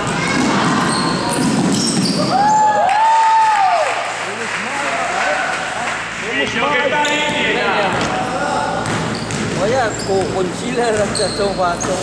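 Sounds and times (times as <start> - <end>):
spectators cheering: 2.2 - 6.0.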